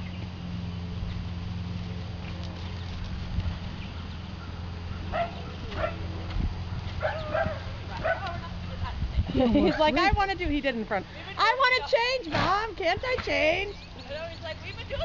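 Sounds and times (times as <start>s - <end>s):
steady low hum: 0.0s - 15.0s
dog barking: 5.0s - 6.1s, 7.0s - 8.4s.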